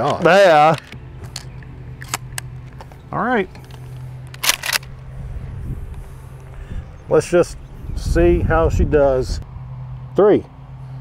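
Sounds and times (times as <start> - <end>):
shotgun being racked: 4.4 - 4.9.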